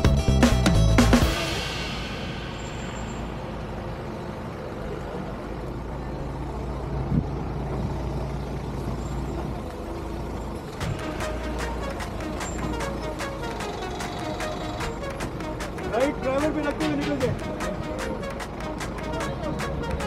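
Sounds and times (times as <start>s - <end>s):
truck engine low rumble: 0.0s - 20.0s.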